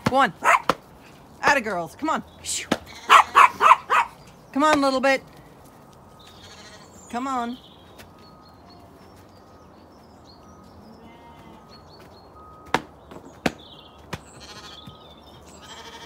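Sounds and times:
distant sheep bleating: 2.7s - 3.8s, 6.2s - 7.2s, 10.8s - 11.8s, 14.2s - 16.0s.

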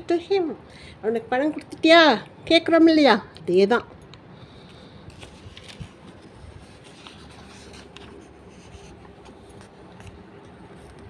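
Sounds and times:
book pages turning: 4.6s - 11.0s.

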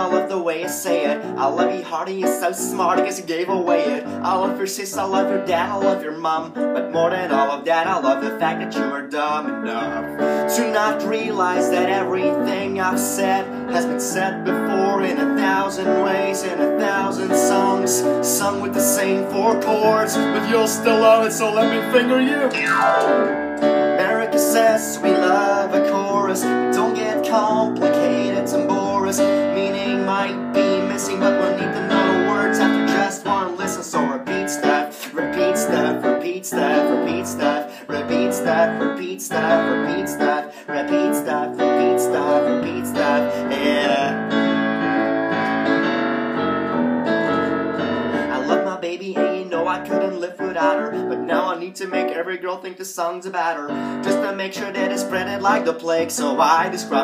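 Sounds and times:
man singing: 0.0s - 45.1s, 48.1s - 57.0s
piano chords: 0.0s - 52.6s, 53.7s - 57.0s.

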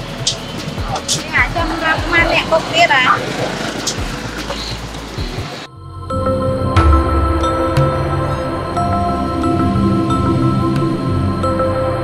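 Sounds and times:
motorcycle engine idling: 0.0s - 5.7s.

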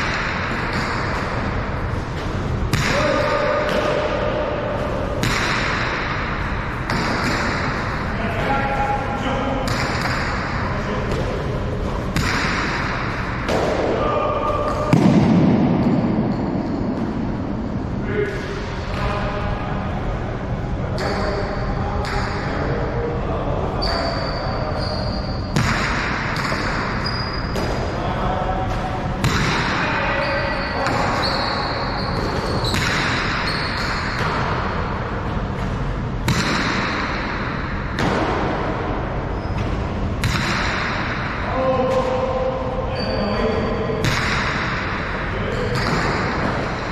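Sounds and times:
ball hitting wall: 0.0s - 8.5s, 9.6s - 11.4s, 12.1s - 17.2s, 25.5s - 28.0s, 28.7s - 29.9s, 32.2s - 38.9s, 39.6s - 42.2s, 44.0s - 45.0s, 45.6s - 46.9s.

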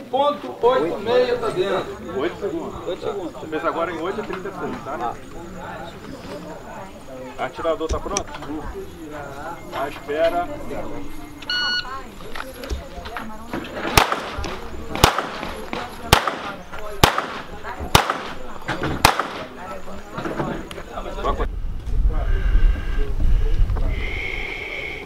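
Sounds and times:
pistol shots: 13.9s - 18.4s, 19.0s - 19.6s.

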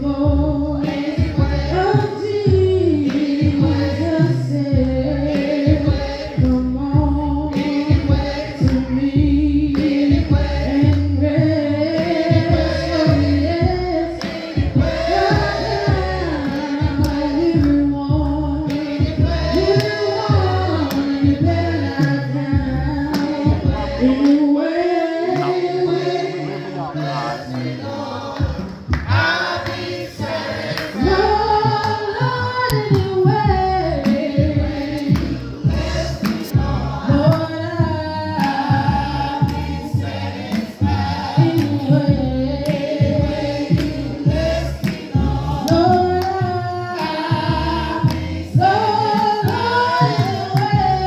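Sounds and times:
congregation singing a hymn: 0.0s - 51.0s.

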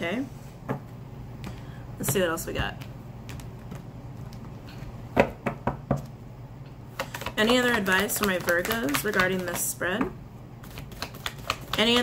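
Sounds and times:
cards being shuffled: 7.0s - 9.6s, 10.6s - 12.0s.

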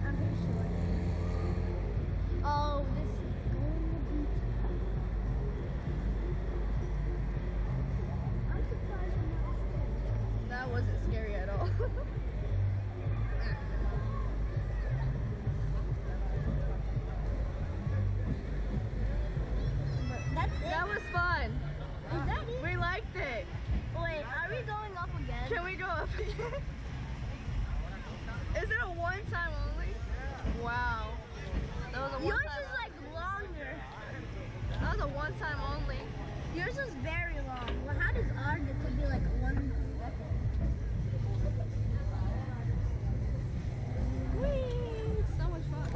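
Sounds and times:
low rumble: 0.0s - 32.2s, 34.1s - 45.9s
children laughing and chattering: 0.0s - 45.9s.

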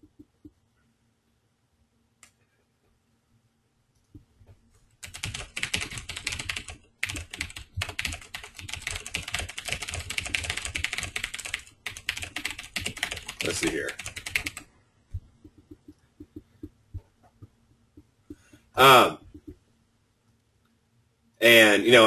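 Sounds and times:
rapid typing on keyboard: 5.0s - 14.7s.

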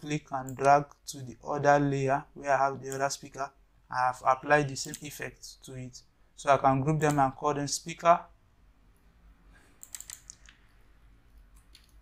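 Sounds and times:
computer clicks: 0.4s - 1.0s, 4.8s - 5.2s, 9.7s - 10.7s, 11.3s - 12.0s.

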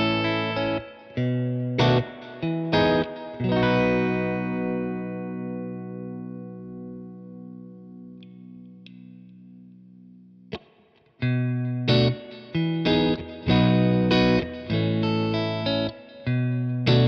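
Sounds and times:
electric guitar chord ringing: 0.0s - 10.6s, 11.2s - 17.0s.

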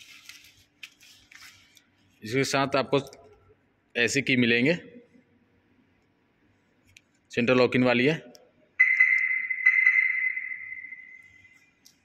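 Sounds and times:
high electronic car lock beeps: 8.8s - 11.4s.

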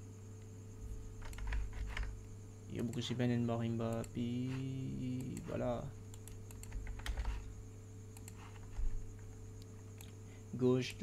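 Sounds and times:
low electrical hum: 0.0s - 11.0s
keyboard and mouse clicks: 1.2s - 2.2s, 5.1s - 7.5s, 8.1s - 10.2s.

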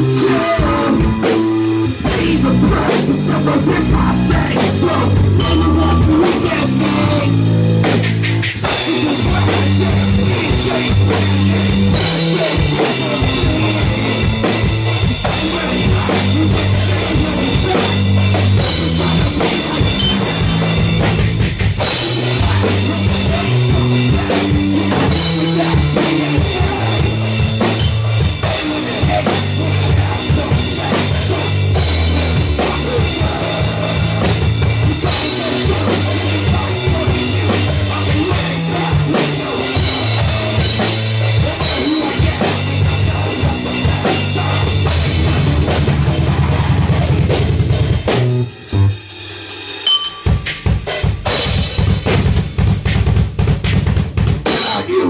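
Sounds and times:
drum kit: 0.0s - 55.0s
rock band playing live: 0.0s - 55.0s.

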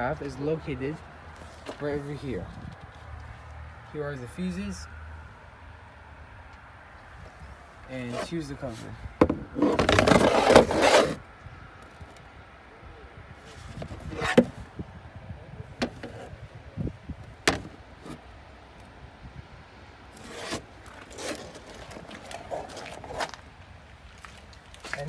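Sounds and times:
footsteps on pavement: 24.1s - 25.0s.

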